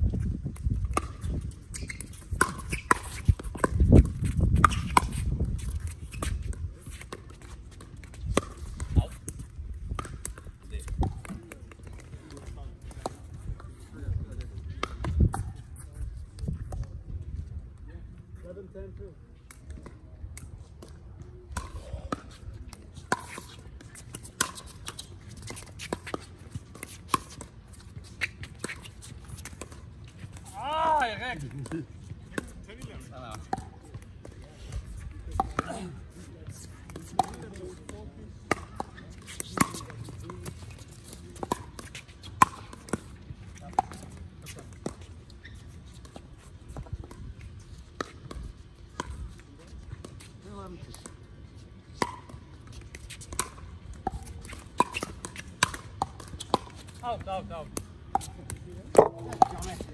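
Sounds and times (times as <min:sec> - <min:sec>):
paddles hitting plastic ball: 0:52.0 - 0:59.9.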